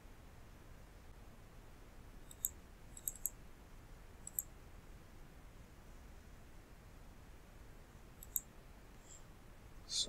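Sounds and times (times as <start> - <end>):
room hiss: 0.0 - 10.0
computer mouse clicking: 2.2 - 3.4, 4.2 - 4.5, 8.2 - 8.5.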